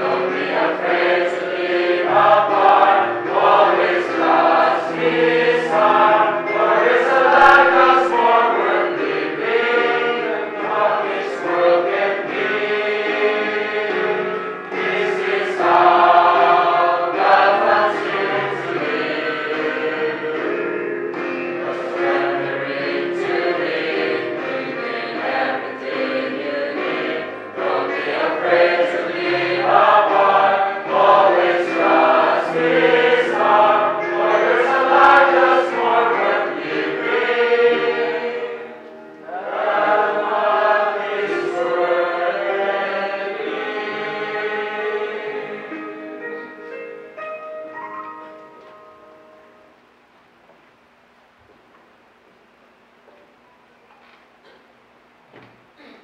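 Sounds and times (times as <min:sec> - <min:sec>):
congregation singing a hymn: 0:00.0 - 0:46.8
instrumental accompaniment: 0:00.0 - 0:49.9
singers on microphones: 0:21.6 - 0:45.8.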